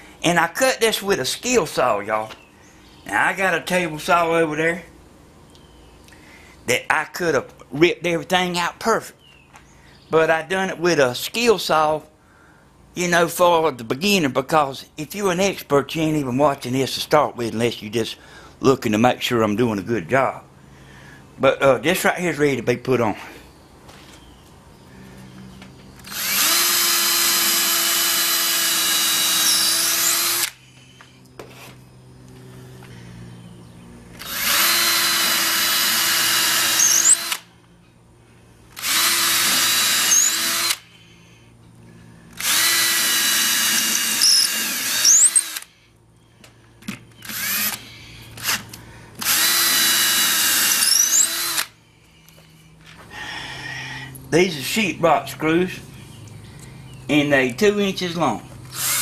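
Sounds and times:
cordless drill driving screws into wood: 0:26.0 - 0:30.6, 0:34.2 - 0:37.5, 0:38.7 - 0:40.9, 0:42.3 - 0:45.8, 0:47.2 - 0:51.8, 0:58.7 - 0:59.0.

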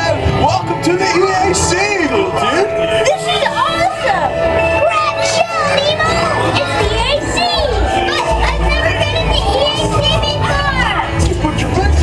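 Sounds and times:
ride soundtrack music: 0:00.0 - 0:12.0.

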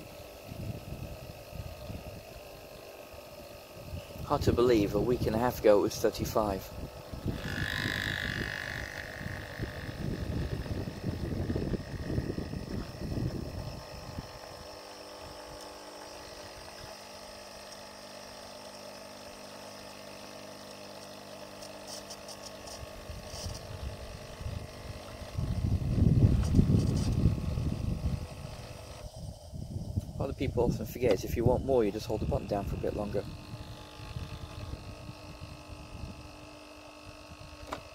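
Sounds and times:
pod machine pump humming: 0:00.0 - 0:37.9.

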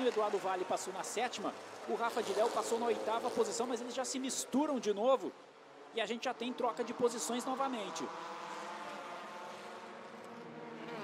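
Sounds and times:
race car engines: 0:00.0 - 0:11.0.

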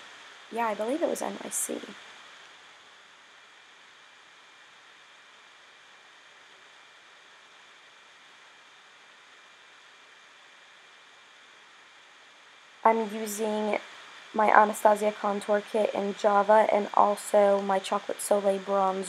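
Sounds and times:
thin high steady tone: 0:00.0 - 0:02.0, 0:12.9 - 0:19.0
faint background hiss: 0:00.0 - 0:19.0.

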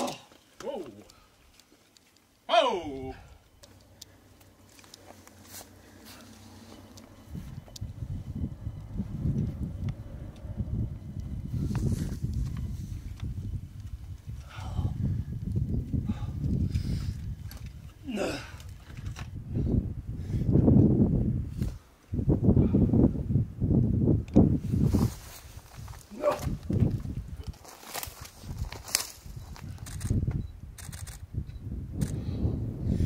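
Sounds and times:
person grunting with effort: 0:00.0 - 0:00.3, 0:02.5 - 0:03.3, 0:18.0 - 0:18.6, 0:26.1 - 0:26.5
wind buffeting microphone: 0:05.8 - 0:33.0.

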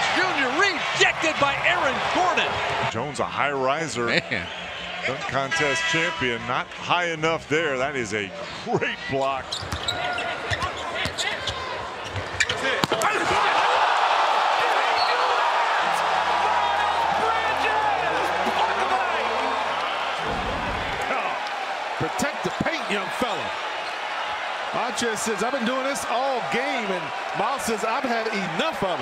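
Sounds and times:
crowd noise: 0:00.0 - 0:03.2, 0:07.5 - 0:29.0.

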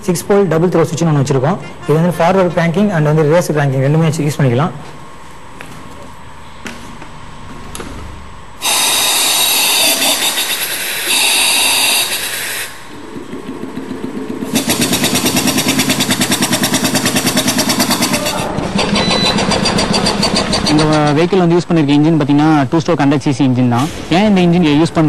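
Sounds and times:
air hissing: 0:08.6 - 0:13.1, 0:14.4 - 0:18.5
engine exhaust chuffing: 0:12.1 - 0:21.3.

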